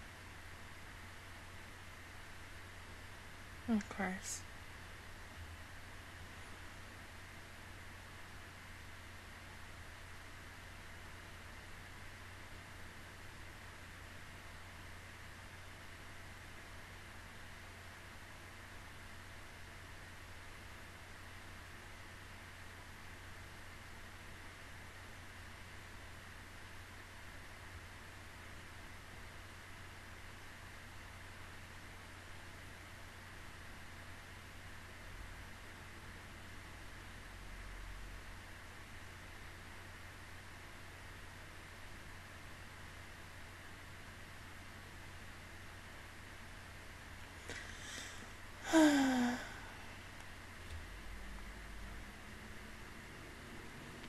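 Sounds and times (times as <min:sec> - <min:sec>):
faint steady hiss: 0:00.0 - 0:54.0.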